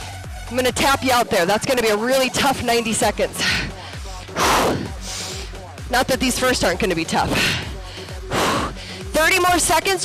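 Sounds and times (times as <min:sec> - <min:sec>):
quiet background music: 0:00.4 - 0:10.0.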